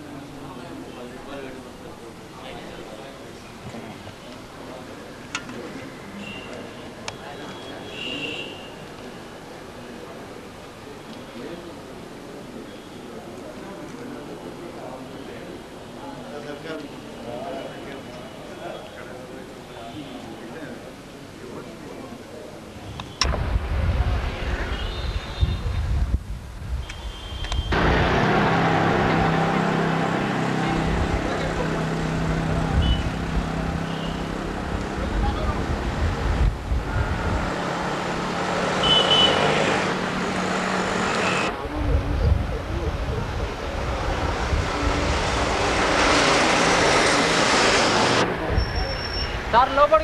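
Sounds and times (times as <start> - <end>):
vehicle engines passing: 27.7 - 50.0.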